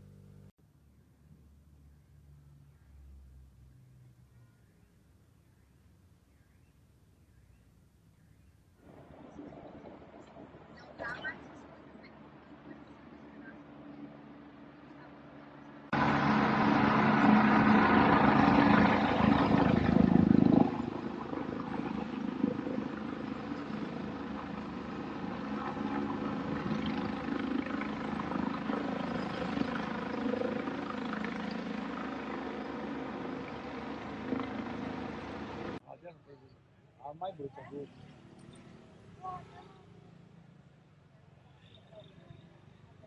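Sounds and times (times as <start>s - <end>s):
helicopter flying overhead: 8.8s - 35.8s.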